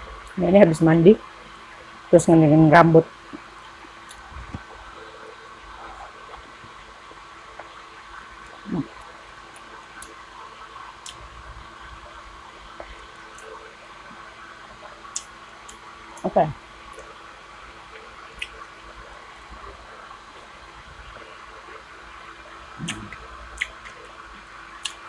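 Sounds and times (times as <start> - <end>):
desk fan humming: 0.0 - 25.0
soft chewing ticks: 3.3 - 4.8, 8.4 - 10.2, 11.0 - 11.2, 14.7 - 16.3, 16.9 - 17.2, 17.9 - 18.7, 22.8 - 25.0
person humming hmm: 22.8 - 23.2.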